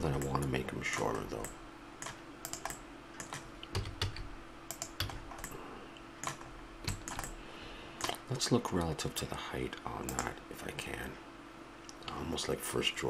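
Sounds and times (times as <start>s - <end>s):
faint steady hum: 0.0s - 13.0s
keyboard and mouse clicking: 1.4s - 5.6s, 6.2s - 7.4s, 10.1s - 10.3s.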